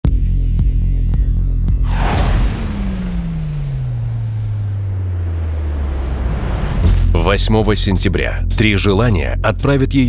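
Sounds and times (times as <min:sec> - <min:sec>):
deep tone sliding down: 0:01.7 - 0:07.2
sudden hit with noise rush: 0:01.8 - 0:07.2.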